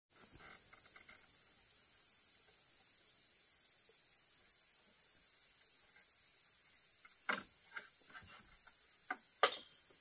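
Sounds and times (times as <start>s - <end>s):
insects droning: 0.1s - 10.0s
wood taps and knocks: 7.0s - 9.6s.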